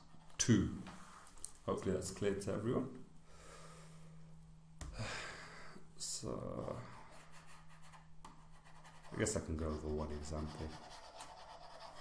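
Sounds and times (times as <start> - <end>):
low electrical hum: 0.0 - 12.0
stylus scratching on tablet: 7.1 - 12.0.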